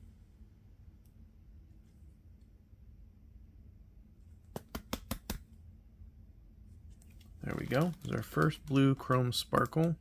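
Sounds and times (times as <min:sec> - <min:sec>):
faint low hum: 0:00.0 - 0:10.0
trading cards clicking: 0:07.5 - 0:10.0.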